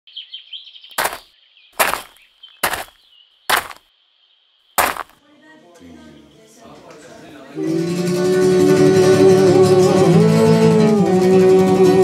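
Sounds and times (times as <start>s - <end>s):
birds chirping: 0.1s - 3.8s
footsteps crunching on gravel: 1.0s - 3.8s, 4.8s - 5.2s.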